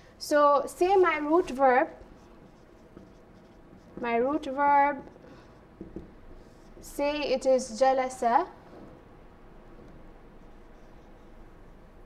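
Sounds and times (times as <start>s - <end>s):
marker writing on whiteboard: 1.2s - 7.2s, 9.8s - 12.0s.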